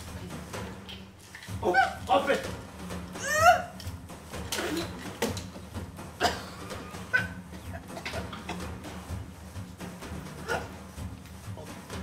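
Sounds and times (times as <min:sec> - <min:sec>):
woman's muffled strangled cries: 0:03.2 - 0:03.8.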